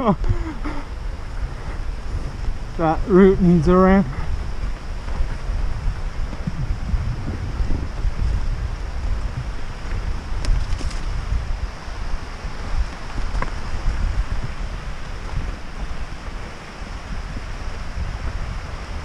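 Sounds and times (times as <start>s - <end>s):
bike rattling: 0.0s - 19.0s
bike tyres rolling over dirt: 0.0s - 19.0s
wind rumbling on microphone: 0.0s - 19.0s.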